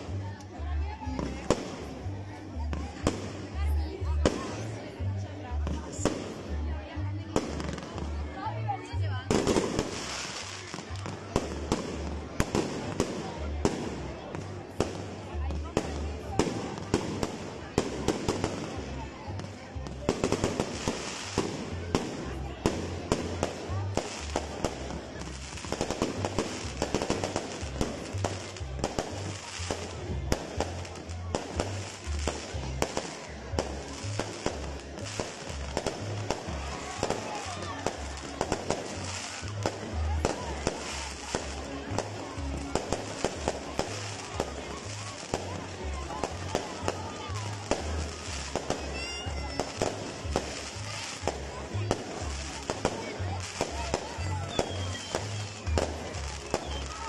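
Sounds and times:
fireworks crackling and popping: 0.0s - 57.0s.

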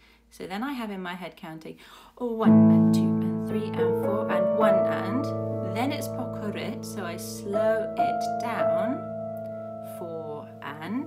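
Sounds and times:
piano notes ringing: 2.4s - 11.0s.

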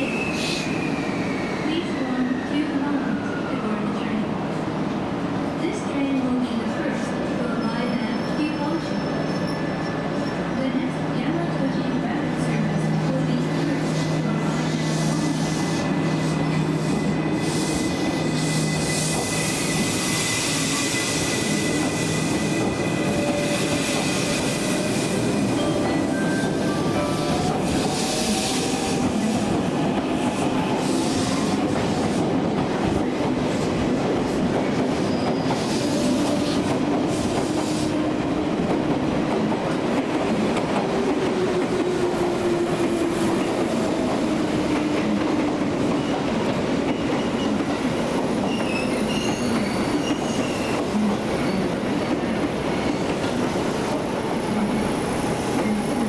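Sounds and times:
train wheels rumbling on rail: 0.0s - 56.0s.

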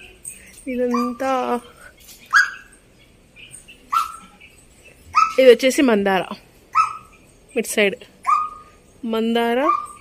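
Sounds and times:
bird calls: 0.0s - 5.7s, 6.7s - 10.0s.

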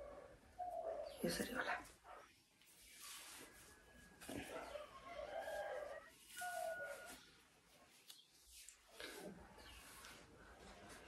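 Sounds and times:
rustling of hair: 1.8s - 4.6s, 5.2s - 11.0s
rooster crowing faintly: 3.3s - 7.4s.

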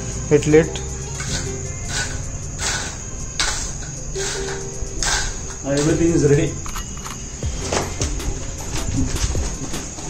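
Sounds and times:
crickets chirping: 0.0s - 10.0s
brief rasping scrapes: 1.2s - 5.6s.

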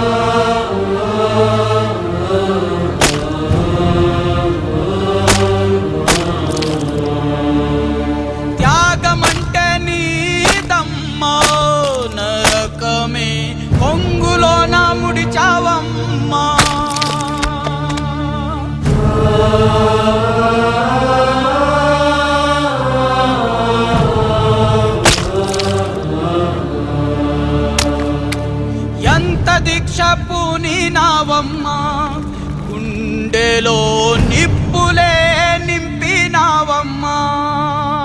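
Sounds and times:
vocal chanting: 0.0s - 38.0s
sharp crack: 3.0s - 3.7s, 5.2s - 7.2s, 9.1s - 13.1s, 16.5s - 18.2s, 25.0s - 26.2s, 27.7s - 28.5s.

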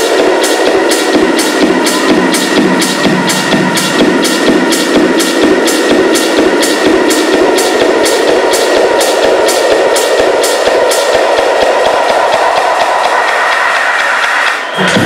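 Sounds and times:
kick drum and bass: 0.0s - 15.0s
techno percussive ticks: 0.0s - 15.0s.

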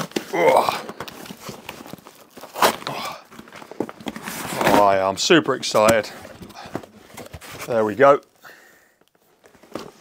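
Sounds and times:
cardboard and paper rustling: 0.0s - 8.3s, 9.0s - 10.0s.

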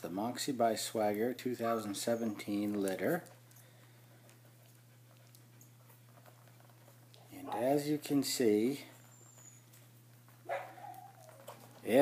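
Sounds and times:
puppy whining: 1.6s - 7.9s, 8.9s - 11.8s.

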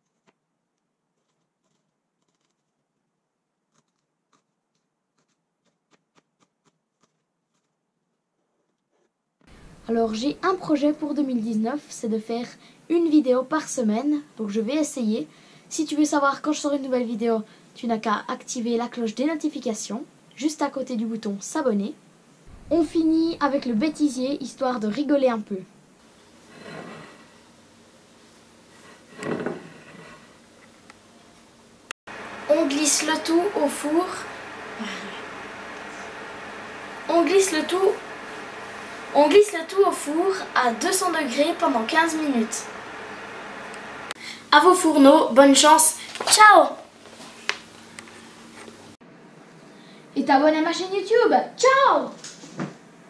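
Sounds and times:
plate scraping on tabletop: 26.4s - 27.5s, 28.7s - 30.4s.

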